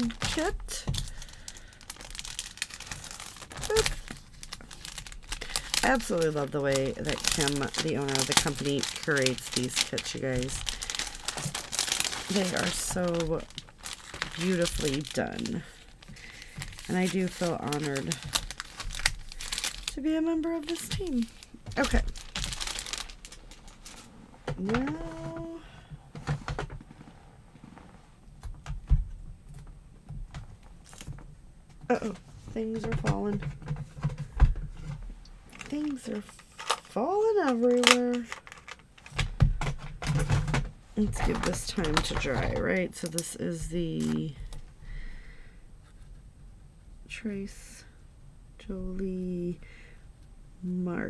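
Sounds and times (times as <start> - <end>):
plastic packaging crinkling: 0.0 - 25.5, 30.8 - 31.2, 35.5 - 44.6.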